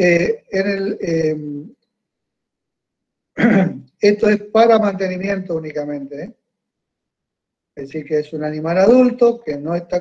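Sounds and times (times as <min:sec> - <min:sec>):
man clearing throat: 0:03.4 - 0:03.9.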